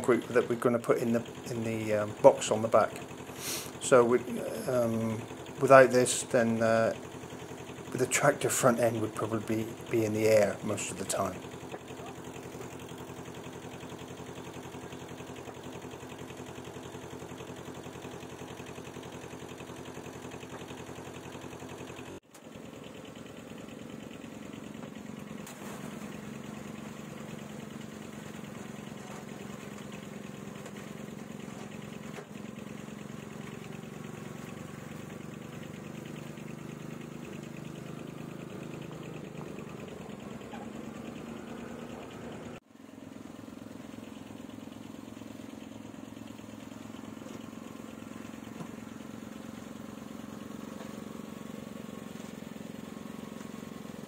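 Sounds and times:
engine idling: 0:00.0 - 0:54.0.

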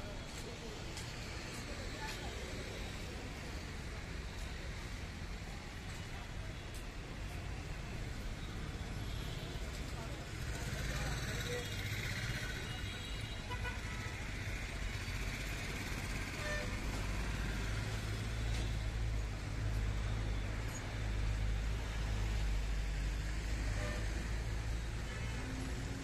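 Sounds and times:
road traffic rumble: 0:00.0 - 0:26.0.

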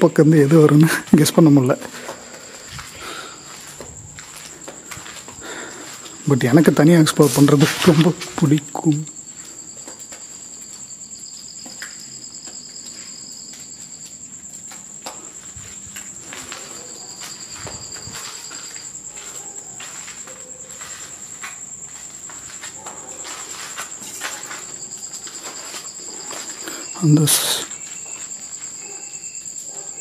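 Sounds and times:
high pulsing cricket trill: 0:00.0 - 0:30.0
lower cricket trill: 0:00.0 - 0:30.0.

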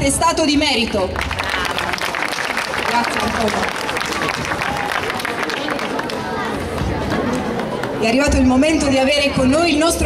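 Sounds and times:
crowd chatter: 0:00.0 - 0:10.0
audience clapping: 0:01.1 - 0:08.1.

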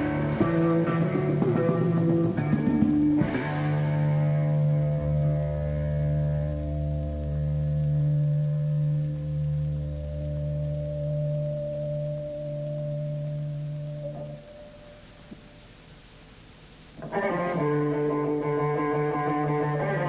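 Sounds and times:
held electric guitar and bass chord: 0:00.0 - 0:15.0, 0:17.0 - 0:20.0.

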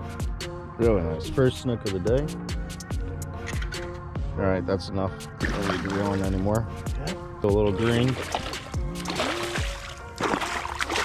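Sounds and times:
background music: 0:00.0 - 0:11.0
fish splashing in water: 0:05.4 - 0:06.4, 0:07.8 - 0:11.0.

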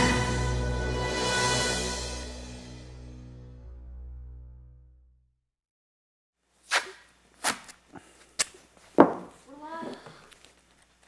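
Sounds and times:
quick swish: 0:06.6 - 0:07.7.

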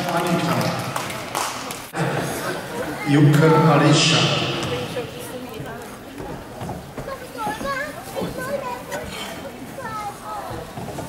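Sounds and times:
children talking and calling out: 0:01.8 - 0:11.0.

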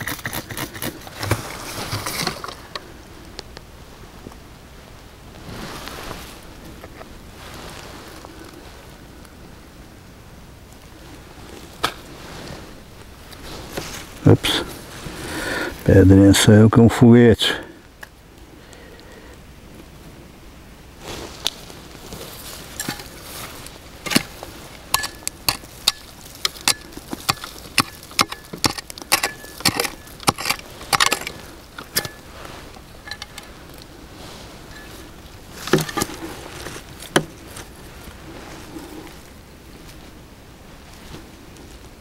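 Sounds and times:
digging tool scraping gritty soil: 0:00.0 - 0:02.9, 0:11.1 - 0:16.3, 0:21.0 - 0:40.1.

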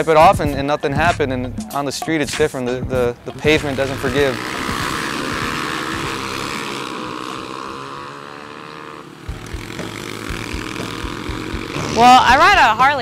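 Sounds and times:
engine drone: 0:02.9 - 0:13.0.

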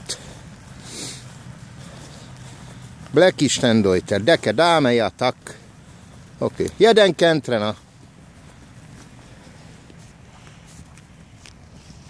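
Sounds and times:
footfalls on wet ground: 0:00.0 - 0:12.0
outdoor hiss: 0:00.0 - 0:12.0.

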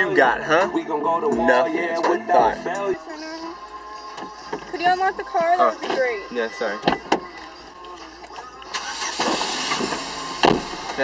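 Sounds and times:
car door opening: 0:04.0 - 0:11.0.

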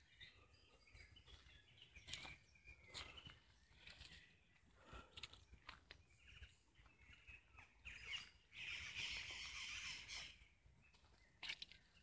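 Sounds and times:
faint bird chirps: 0:00.0 - 0:12.0.

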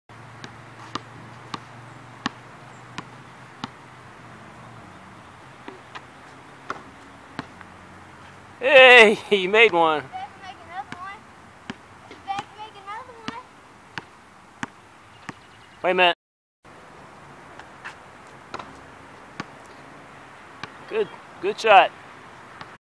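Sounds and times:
basketball bouncing on asphalt: 0:00.1 - 0:08.4, 0:09.5 - 0:15.6, 0:17.5 - 0:19.7, 0:20.5 - 0:20.9, 0:22.5 - 0:22.8
faint outdoor background: 0:00.1 - 0:22.8.

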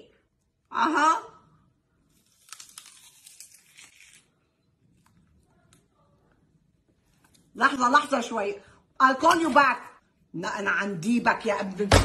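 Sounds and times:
crisp crunching bite: 0:02.1 - 0:04.4.

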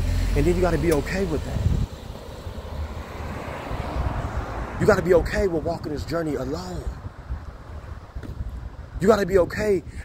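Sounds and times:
wind buffeting microphone: 0:01.3 - 0:10.0.

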